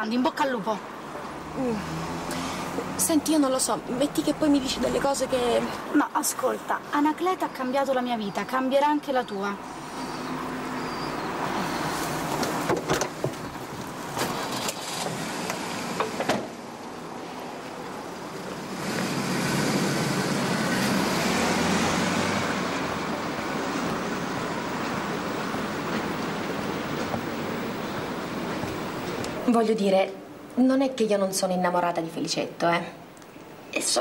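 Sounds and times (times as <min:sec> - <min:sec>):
road noise: 0:00.0 - 0:34.0
car engine: 0:00.9 - 0:05.7, 0:18.0 - 0:29.4.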